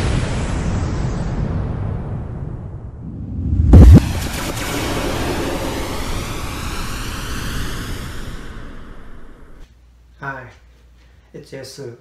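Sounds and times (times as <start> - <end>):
rushing boom tail with hiss: 0.0 - 9.6.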